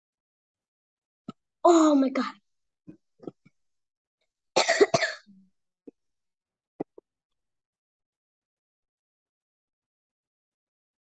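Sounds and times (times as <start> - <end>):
person coughing: 4.6 - 5.3.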